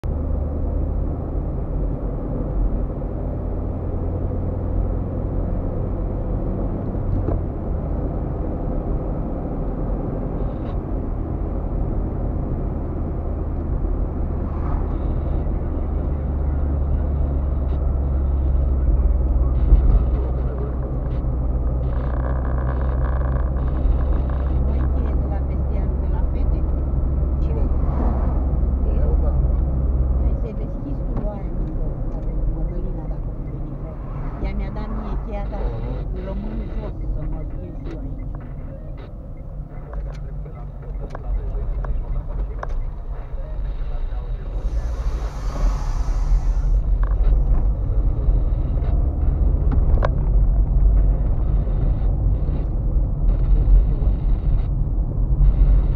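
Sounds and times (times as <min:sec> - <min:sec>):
car driving drone from inside: 0:00.0 - 0:55.9.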